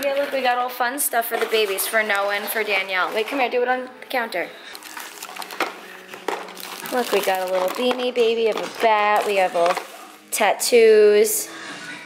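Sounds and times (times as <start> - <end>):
plastic bag crinkling: 4.6 - 10.5
treats set into plastic buckets: 4.7 - 10.4.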